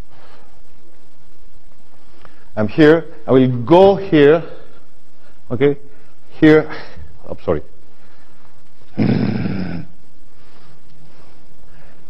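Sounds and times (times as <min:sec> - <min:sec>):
man clearing his throat: 0:08.9 - 0:10.0.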